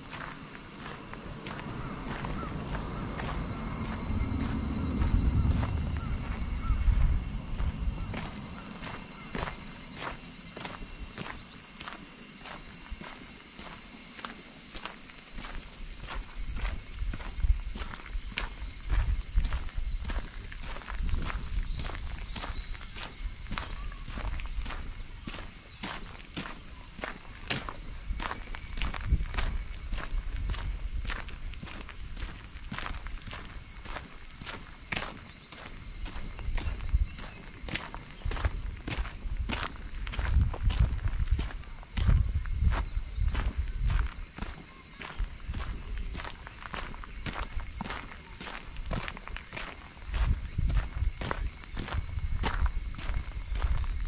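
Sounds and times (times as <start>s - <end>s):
footsteps on sandy dirt path: 0.0s - 54.0s
high-pitched insect chorus: 0.0s - 54.0s.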